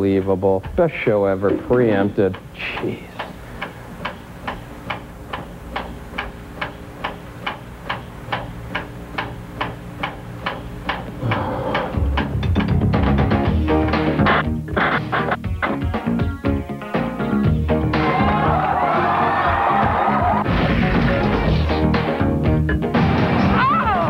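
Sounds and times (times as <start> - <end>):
clock-like ticking: 0.0 - 13.6.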